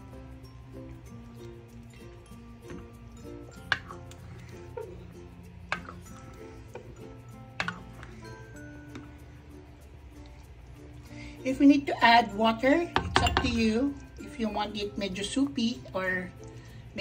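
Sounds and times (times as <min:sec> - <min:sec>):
light background music: 0:00.0 - 0:17.0
stirring and scraping porridge: 0:01.4 - 0:09.4
ladle knocking on pot: 0:13.0 - 0:13.7.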